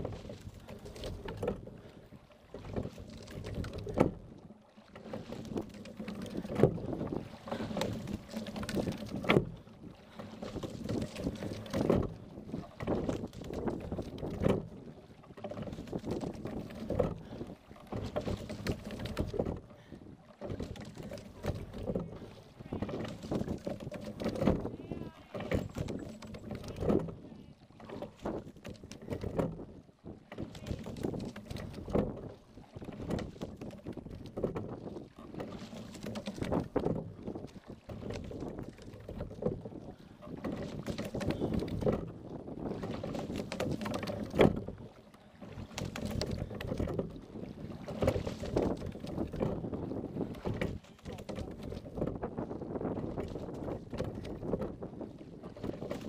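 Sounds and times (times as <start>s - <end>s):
oars and rigging knocking: 0.0s - 56.0s
water rushing along hull: 0.0s - 56.0s.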